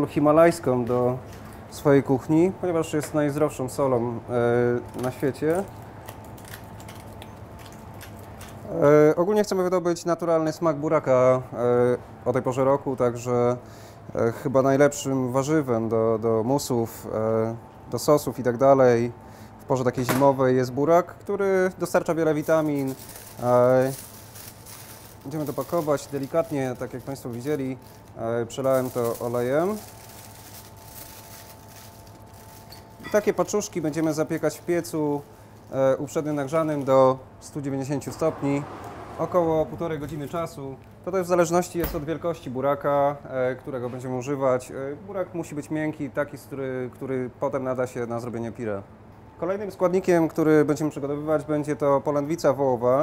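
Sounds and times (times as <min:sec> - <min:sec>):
man speaking: 0:00.0 - 0:05.7, 0:14.2 - 0:24.0, 0:25.2 - 0:29.9, 0:33.0 - 0:48.8
low room hum: 0:00.0 - 0:53.0
aluminium foil crinkling: 0:04.7 - 0:08.8, 0:21.8 - 0:37.0.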